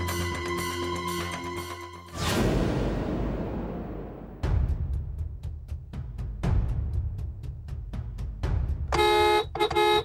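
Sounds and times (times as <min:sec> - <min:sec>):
background music with drum beat: 0:04.4 - 0:10.0
car horn honking: 0:08.9 - 0:10.0.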